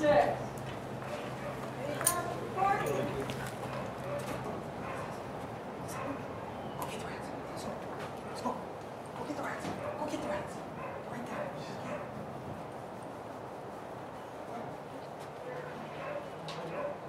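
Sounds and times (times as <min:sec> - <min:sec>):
dog barking and yipping: 0:01.0 - 0:01.7, 0:03.6 - 0:05.2, 0:05.9 - 0:06.2, 0:09.8 - 0:10.2, 0:10.8 - 0:12.2, 0:15.5 - 0:17.0.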